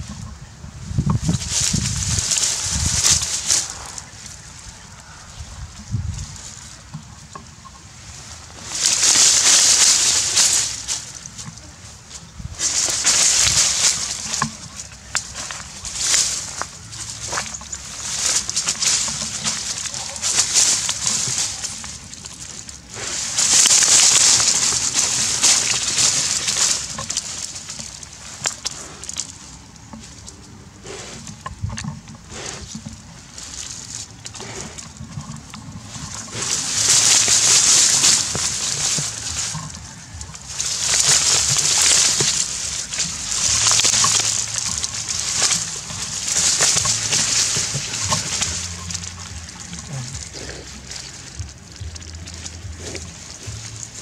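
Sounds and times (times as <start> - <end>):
dog paws scraping soil and grass: 0.0 - 54.0.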